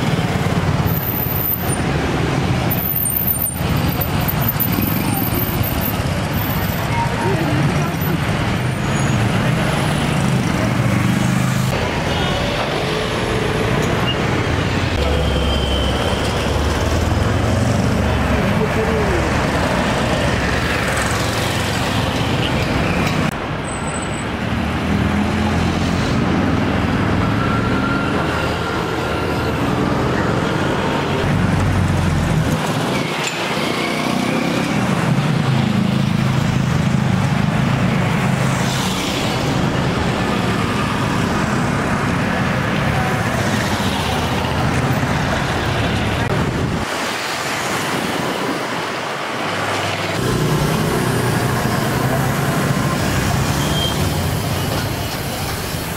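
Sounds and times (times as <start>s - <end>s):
passing vehicles and engines: 0.0s - 55.9s
people's voices: 4.4s - 8.4s, 18.2s - 19.6s.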